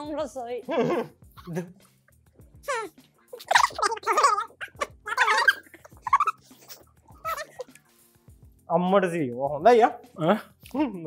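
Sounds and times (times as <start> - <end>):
high wavering cries: 2.7 - 7.6.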